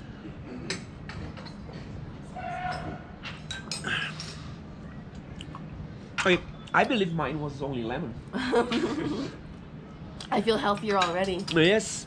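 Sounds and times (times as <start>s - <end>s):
steady low hum: 0.0s - 12.0s
dishes and cutlery clinking: 10.7s - 11.7s.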